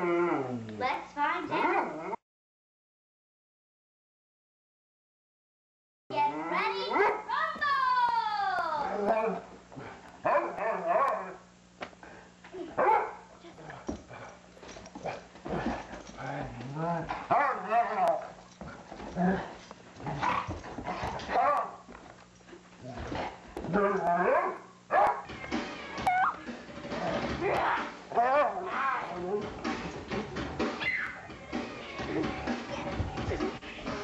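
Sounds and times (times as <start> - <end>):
dogs growling: 0.0 - 0.8, 13.5 - 21.4, 22.8 - 24.6, 26.8 - 30.8
dogs barking: 10.2 - 11.4, 12.8 - 13.3, 17.2 - 18.4, 21.2 - 21.9, 23.7 - 25.3, 27.4 - 28.8.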